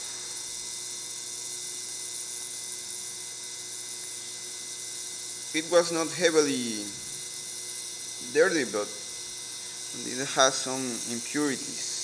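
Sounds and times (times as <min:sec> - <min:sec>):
ultrasonic cleaning bath hissing: 0:00.0 - 0:00.9, 0:03.9 - 0:12.0.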